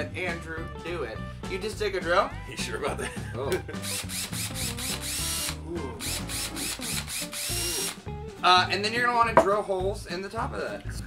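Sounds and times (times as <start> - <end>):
cordless drill motor whine: 3.8 - 8.0.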